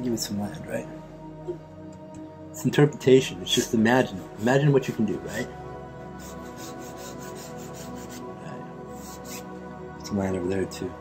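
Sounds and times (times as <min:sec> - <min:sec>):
paintbrush scrubbing on canvas: 0:06.2 - 0:09.5.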